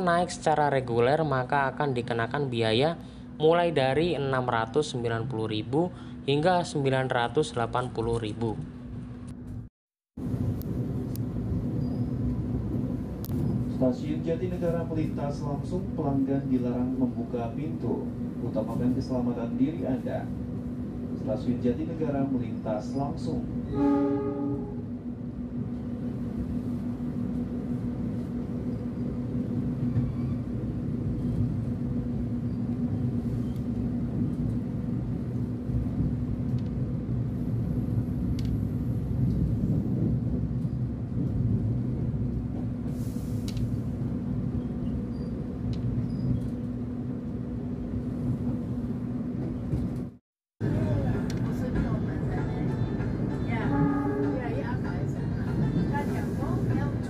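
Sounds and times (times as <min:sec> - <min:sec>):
train wheels rumbling on track: 0:10.2 - 0:57.0.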